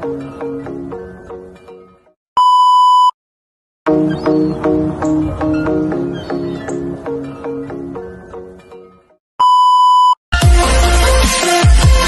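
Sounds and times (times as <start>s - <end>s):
music: 0.0s - 2.2s, 3.9s - 9.2s, 10.4s - 12.0s
steady test tone beep: 2.4s - 3.2s, 9.4s - 10.2s.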